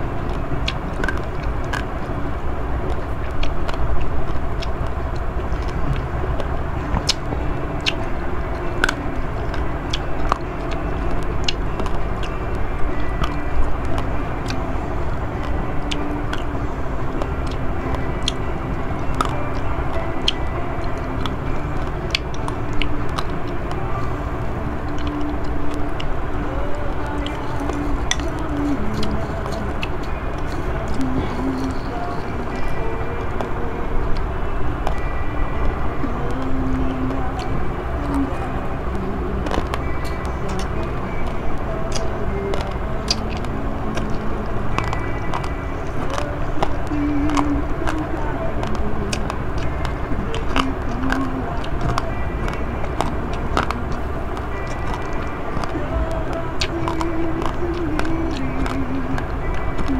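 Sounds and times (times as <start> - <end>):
background music or voices: 0.0 - 59.9
mouth chewing rice: 0.0 - 59.9.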